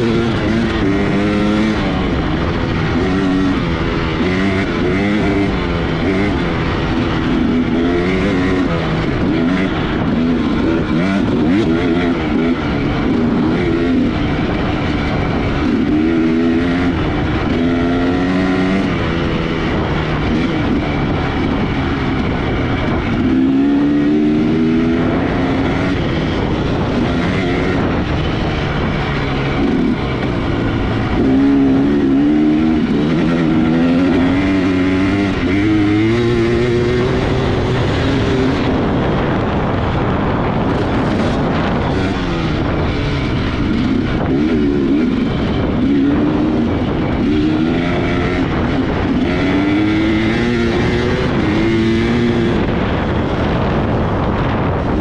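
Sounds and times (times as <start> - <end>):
dirt bike engine accelerating: 0.0 - 55.0
wind and trail noise: 0.0 - 55.0.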